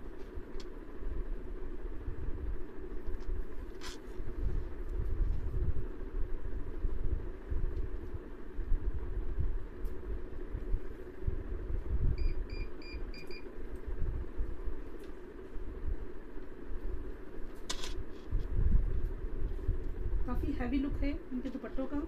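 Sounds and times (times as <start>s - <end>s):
low rumbling background noise: 0.0s - 22.0s.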